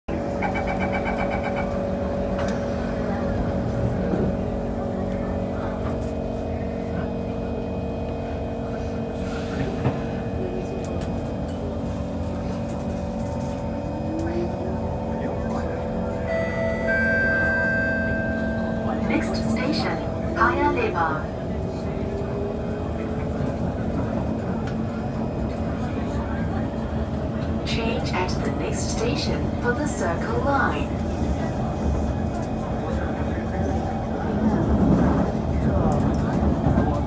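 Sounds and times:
train equipment hum: 0.1s - 37.0s
train traction whine: 0.1s - 37.0s.

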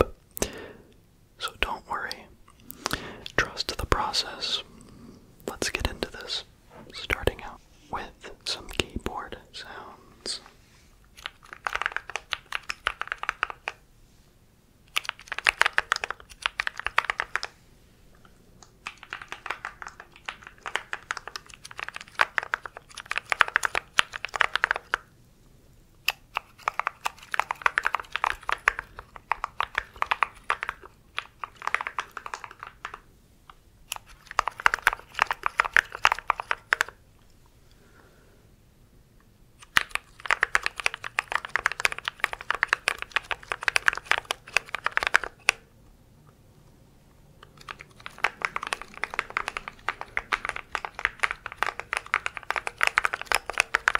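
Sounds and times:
mechanical keyboard clacking: 11.2s - 13.8s, 14.9s - 17.5s, 18.8s - 25.0s, 26.1s - 33.0s, 33.9s - 37.0s, 39.6s - 45.6s, 47.5s - 53.9s.

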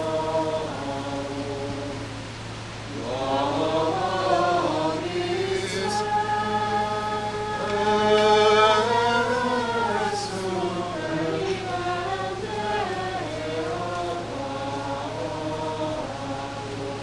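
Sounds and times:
steady low hum: 0.0s - 17.0s
voices singing liturgical chant: 0.0s - 17.0s.

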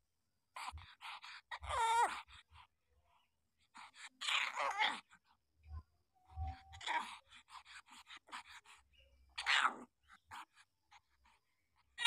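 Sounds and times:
puppies whimpering: 1.4s - 2.3s, 6.2s - 10.4s.

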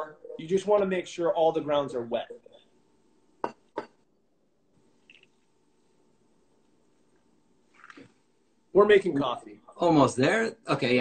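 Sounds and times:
kitchenware clinking: 3.4s - 4.0s.

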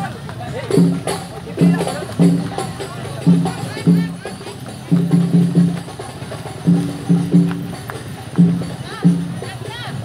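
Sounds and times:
deep barrel drum strokes: 0.7s - 9.4s.

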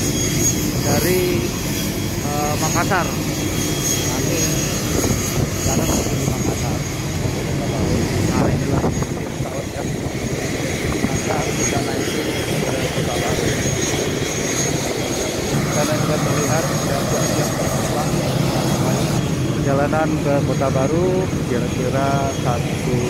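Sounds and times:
aircraft engine with high whine: 0.0s - 23.0s.

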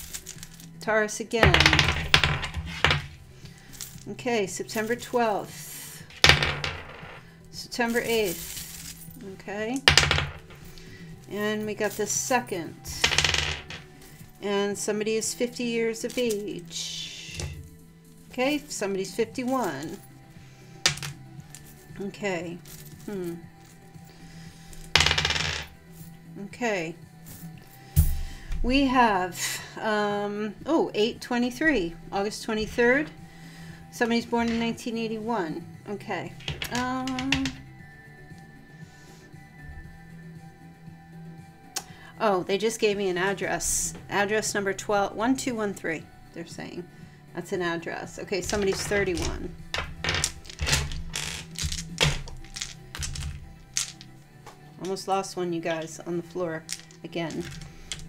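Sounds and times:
soft background music: 0.0s - 58.0s
plastic dice clattering on table: 1.4s - 3.2s, 6.1s - 7.2s, 9.8s - 10.6s, 12.9s - 13.8s, 20.9s - 21.2s, 24.9s - 25.7s, 36.4s - 37.6s, 48.4s - 54.1s, 56.6s - 58.0s.

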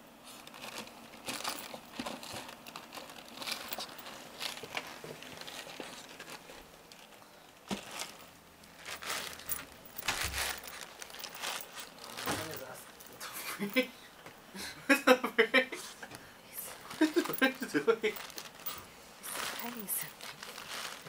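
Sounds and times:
bag crinkling: 0.2s - 13.8s, 16.7s - 21.0s
dog digging and scratching fabric: 7.7s - 12.8s, 18.2s - 21.0s.

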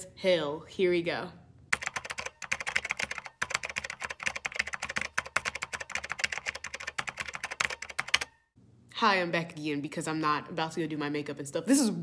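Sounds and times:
keyboard typing: 1.7s - 8.4s.

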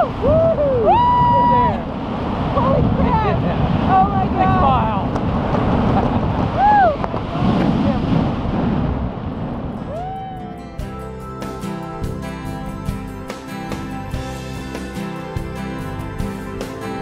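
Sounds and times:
person whooping: 0.0s - 1.8s, 6.6s - 7.0s, 9.8s - 10.6s
wind rushing over microphone: 0.0s - 11.0s.

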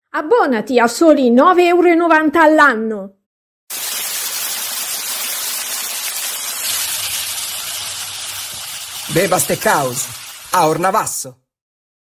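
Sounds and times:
steak sizzling on a grill: 3.7s - 11.2s.

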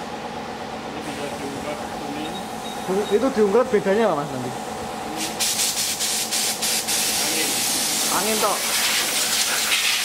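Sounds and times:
compressed air gun hissing: 5.2s - 10.0s.

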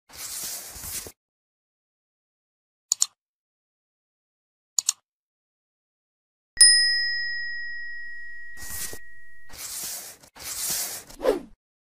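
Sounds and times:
bright bell ding: 6.6s - 9.6s
short whooshing swishes: 10.5s - 11.6s.

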